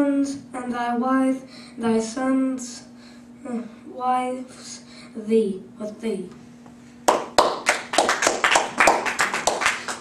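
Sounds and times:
hands clapping in applause: 7.0s - 10.0s.

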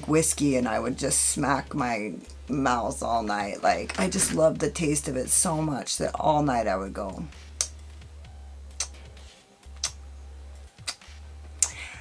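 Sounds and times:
woman smacking lips: 8.7s - 9.1s, 9.8s - 10.0s, 11.6s - 11.9s.

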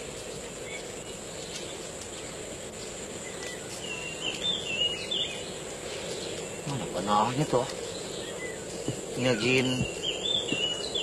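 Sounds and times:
outdoor background noise: 0.0s - 11.0s
thin high constant tone: 0.0s - 11.0s
bird warbling chirps: 3.2s - 11.0s.

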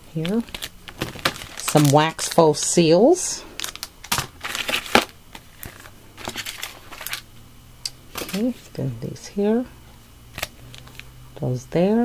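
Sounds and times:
plastic packaging crinkling: 0.0s - 2.4s, 3.6s - 7.3s, 10.3s - 11.1s.

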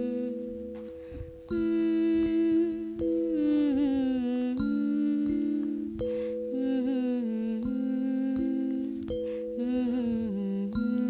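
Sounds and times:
harmonica chords: 0.0s - 11.0s.

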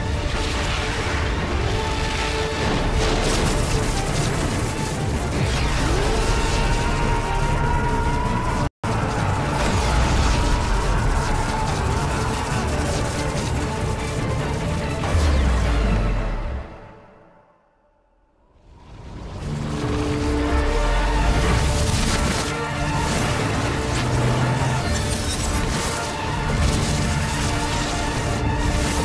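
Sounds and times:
rumbling and crashing explosions: 0.0s - 17.0s, 18.6s - 29.0s
dramatic orchestral score: 0.0s - 17.6s, 18.5s - 29.0s.

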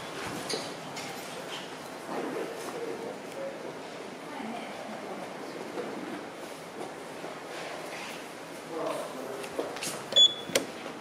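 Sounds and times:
high electronic elevator beep: 10.2s - 10.5s.

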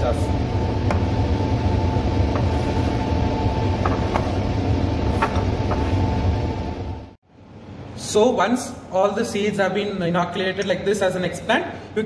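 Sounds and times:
air-flow cabinet blower humming: 0.0s - 12.0s
faint steady whine: 0.0s - 12.0s.

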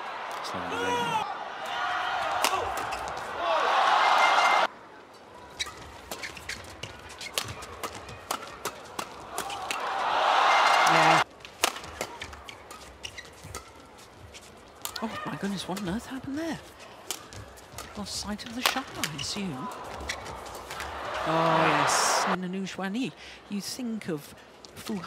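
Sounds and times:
crowd noise: 0.0s - 22.6s
racket hitting shuttlecock: 7.2s - 9.9s, 11.4s - 13.8s.

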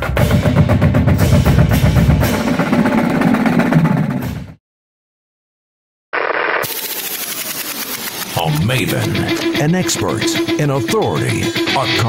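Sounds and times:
rapid machine-gun fire: 6.3s - 8.5s.

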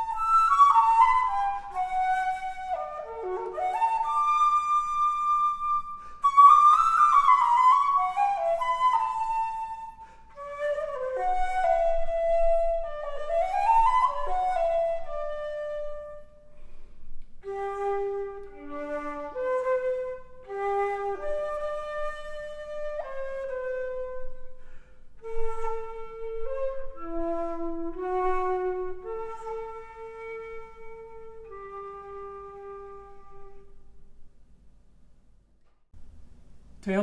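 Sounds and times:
wooden flute melody: 0.0s - 34.1s.

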